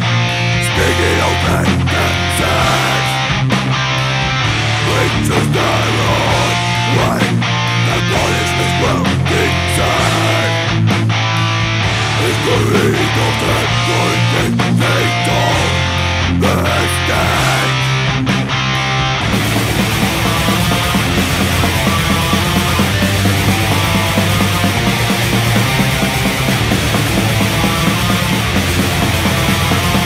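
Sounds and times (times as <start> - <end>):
death metal music: 0.0 - 30.0.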